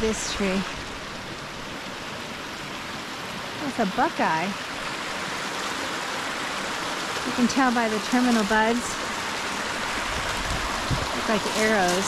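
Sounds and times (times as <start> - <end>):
mountain stream rushing: 0.0 - 12.0.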